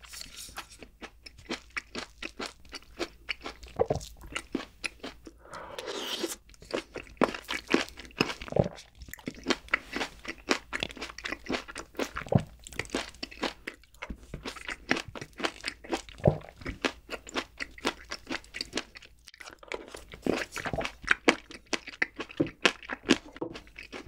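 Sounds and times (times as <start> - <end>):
chewing cake: 0.0 - 24.0.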